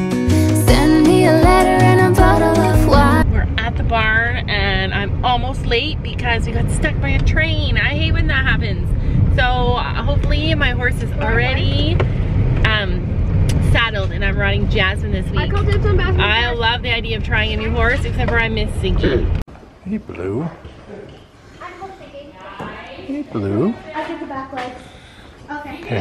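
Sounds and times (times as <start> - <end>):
car interior road rumble: 0.6 - 21.0
voices talking: 12.7 - 26.0.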